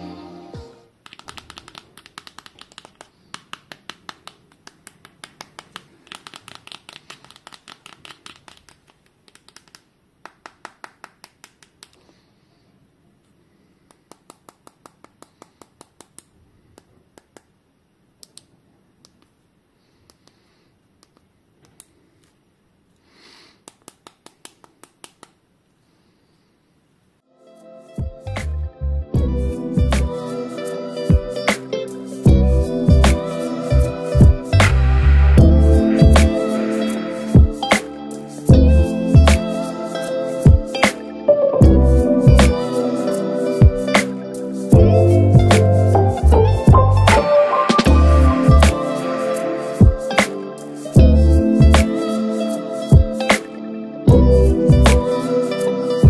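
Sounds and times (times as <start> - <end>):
fingertips tapping on phone: 1.0 - 9.8.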